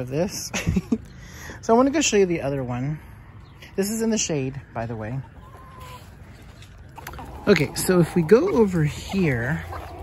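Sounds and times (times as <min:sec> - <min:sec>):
quiet yard background: 0:00.0 - 0:10.0
chicken calling faintly: 0:05.2 - 0:06.3.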